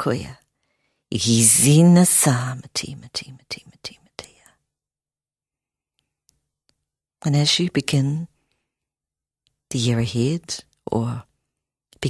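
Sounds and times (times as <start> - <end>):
person whispering: 1.4 - 4.6.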